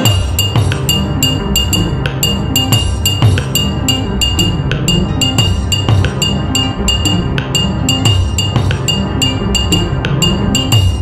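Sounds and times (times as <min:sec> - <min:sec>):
deep bass: 0:00.0 - 0:11.0
instrumental hip-hop beat: 0:00.0 - 0:11.0.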